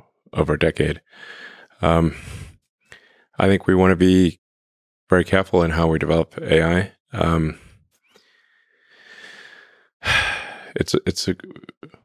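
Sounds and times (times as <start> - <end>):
man talking: 0.4 - 2.5, 3.4 - 4.4, 5.1 - 7.7, 10.1 - 12.0
man sighing: 9.0 - 10.8.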